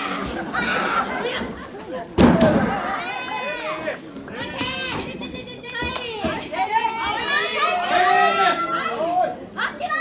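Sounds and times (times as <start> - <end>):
high-pitched shouting and yelling: 2.8 - 10.0.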